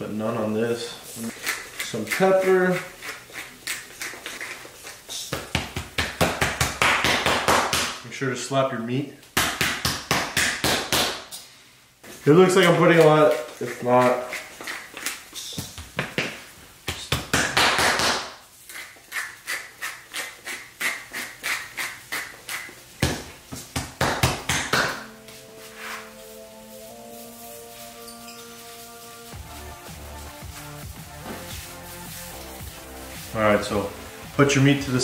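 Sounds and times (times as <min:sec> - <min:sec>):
hand slapping raw steak: 0:20.8 - 0:25.1
background music: 0:24.1 - 0:35.0.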